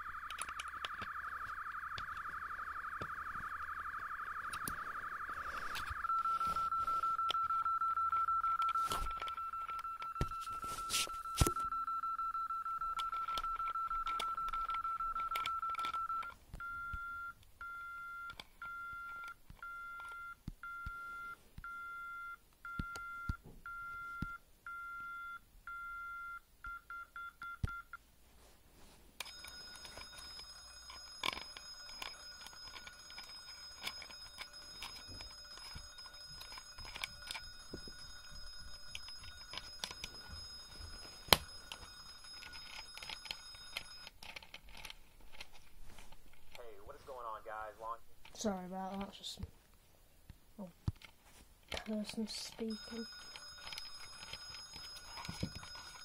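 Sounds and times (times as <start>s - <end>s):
shrill steady alarm tone: 0.0s - 16.3s, 29.2s - 44.1s, 51.9s - 56.0s
electronic alarm sounder: 0.0s - 27.1s, 29.2s - 44.1s, 52.4s - 56.0s
handling clicks and knocks: 29.2s - 46.6s, 50.8s - 56.0s.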